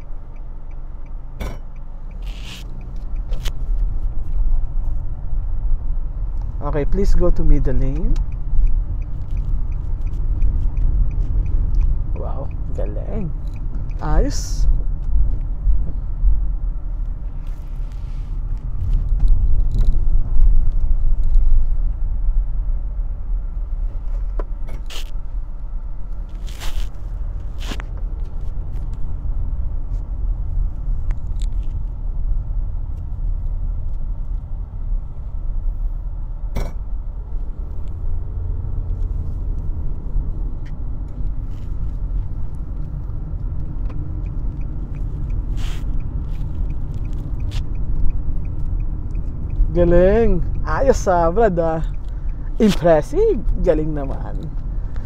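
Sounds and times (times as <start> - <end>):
car cabin road rumble: 0.0 - 55.0.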